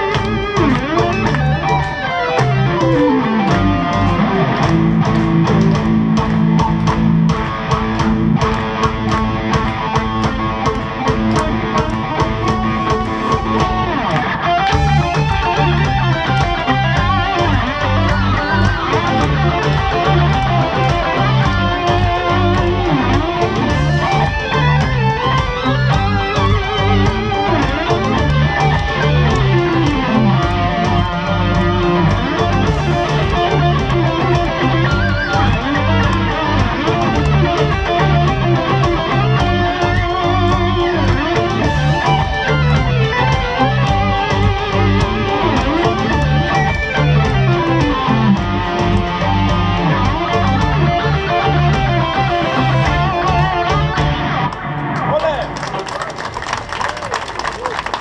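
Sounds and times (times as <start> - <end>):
electric violin: 0.0 - 6.7, 7.4 - 54.6
distorted electric guitar: 0.0 - 55.8.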